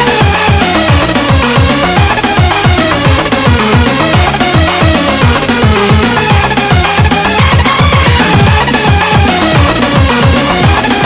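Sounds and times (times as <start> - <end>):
electronic dance music: 4.8 - 11.0
repeating synth lines: 7.9 - 9.4
booming kick drum: 8.0 - 9.3.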